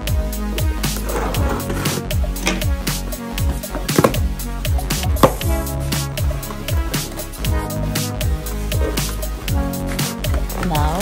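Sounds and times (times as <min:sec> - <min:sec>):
background music with beat: 0:00.0 - 0:11.0
cardboard box scraping rustle: 0:01.0 - 0:02.1.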